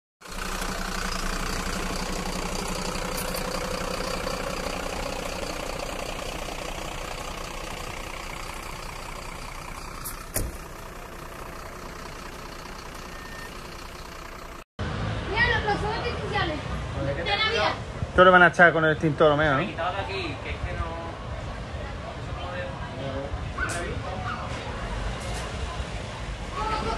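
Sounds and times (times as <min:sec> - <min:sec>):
diesel engine idling: 0:00.2 - 0:26.9.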